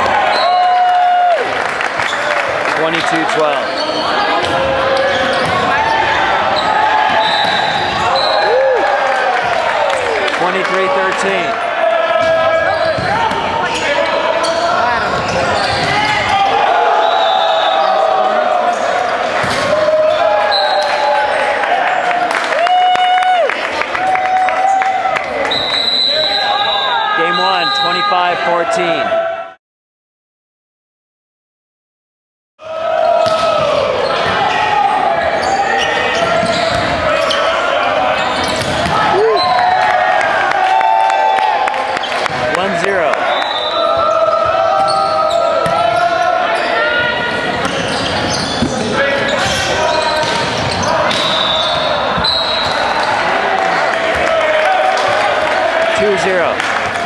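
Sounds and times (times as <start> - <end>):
players shouting: 0.0 - 25.4, 26.1 - 29.6, 32.6 - 57.0
crowd voices: 1.6 - 22.6, 24.6 - 29.5, 32.6 - 57.0
ball hits and bounces: 19.4 - 19.8, 33.2 - 33.8, 38.6 - 39.1.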